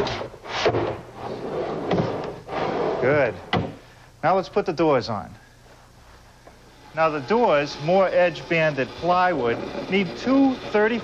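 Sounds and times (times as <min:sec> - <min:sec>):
drawer sliding: 0:00.0 - 0:03.6.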